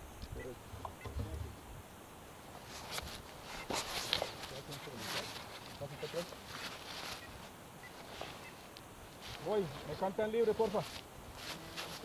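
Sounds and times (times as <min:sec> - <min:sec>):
gear rustles and small clicks: 0:02.6 - 0:10.0.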